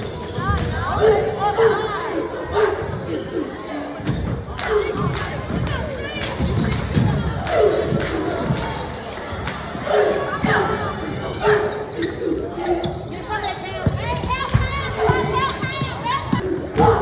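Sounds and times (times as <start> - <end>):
cheerleaders chanting cheers: 0.0 - 17.0
crowd voices: 0.0 - 17.0.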